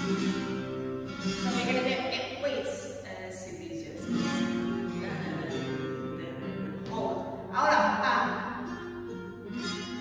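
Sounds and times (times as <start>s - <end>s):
flamenco acoustic guitar: 0.0s - 10.0s.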